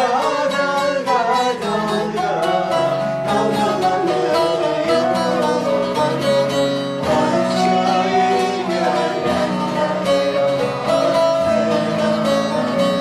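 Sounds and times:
piano notes and chords: 0.0 - 13.0
plucked saz notes: 0.0 - 13.0.

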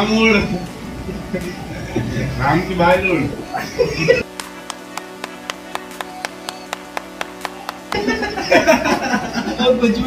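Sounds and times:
sustained music chord: 0.0 - 9.6
person clapping steadily: 4.3 - 8.1.

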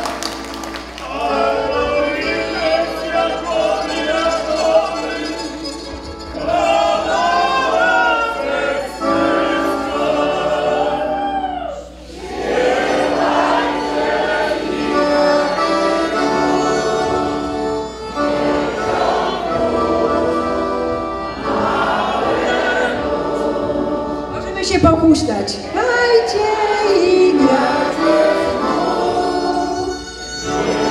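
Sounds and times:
accordion: 0.0 - 11.1, 12.1 - 30.9
group singing a carol: 1.0 - 24.4, 25.6 - 30.9
violin: 12.8 - 24.9, 25.5 - 30.9.

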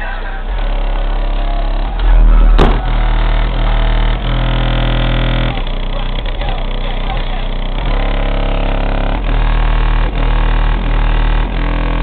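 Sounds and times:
subwoofer playing bass-heavy music: 0.0 - 12.0
sharp knock: 2.6 - 3.0.

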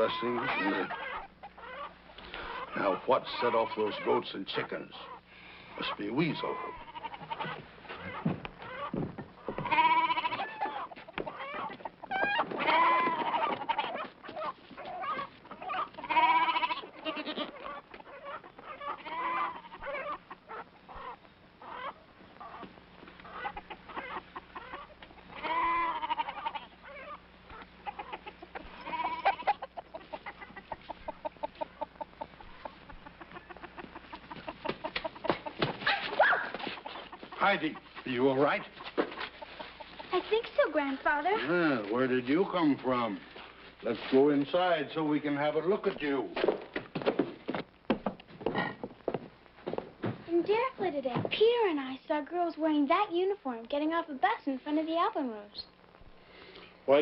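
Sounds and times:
goats bleating: 0.0 - 4.3, 5.8 - 20.3, 24.5 - 30.6
chickens clucking and squawking: 0.0 - 47.6.

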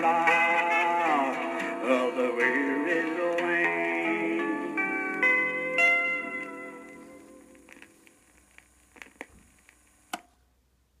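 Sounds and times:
background hiss: 0.0 - 11.0
guitar note ringing: 4.1 - 7.8.

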